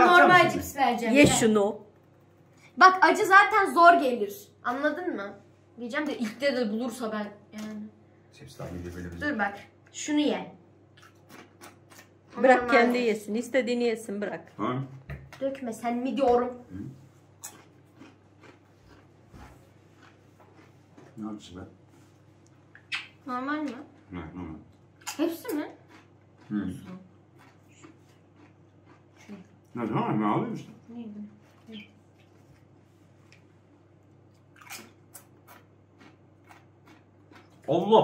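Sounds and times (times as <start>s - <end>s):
low steady hum: 0.0s - 38.0s
chip crunching while chewing: 11.0s - 12.2s, 17.4s - 19.1s, 20.0s - 21.1s, 25.8s - 29.1s, 34.6s - 37.7s
tortilla chips crunching: 17.4s - 19.1s.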